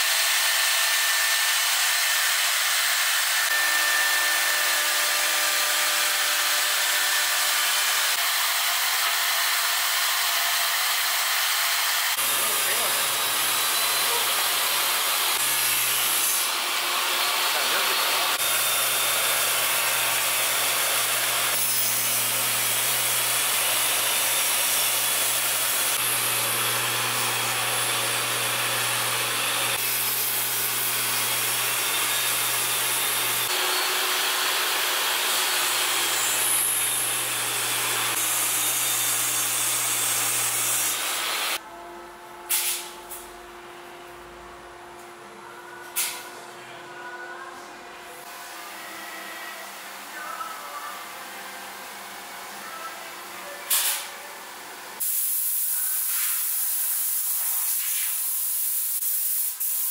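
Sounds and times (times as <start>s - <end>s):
router spindle cutting wood: 0.0s - 41.7s
table saw cutting wood: 0.0s - 43.3s.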